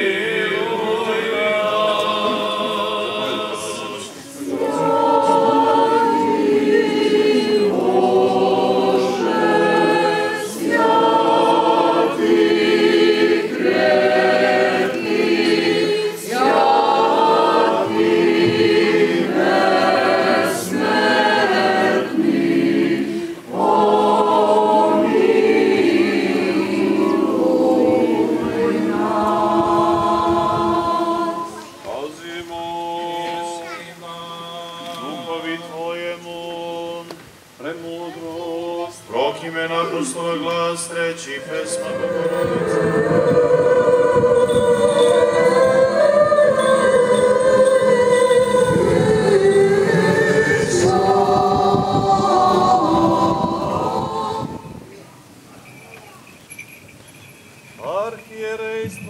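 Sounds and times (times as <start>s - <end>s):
choir chanting unaccompanied: 0.0s - 55.0s.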